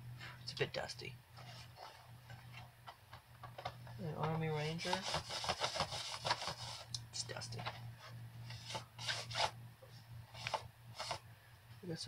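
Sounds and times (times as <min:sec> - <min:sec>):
low steady hum: 0:00.0 - 0:12.0
hand rubbing plastic packaging: 0:01.4 - 0:02.8, 0:03.6 - 0:09.6, 0:10.3 - 0:11.2.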